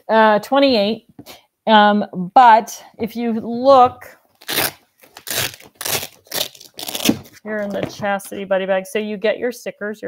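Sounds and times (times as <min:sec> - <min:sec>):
plastic bag crinkling: 0:04.3 - 0:08.0.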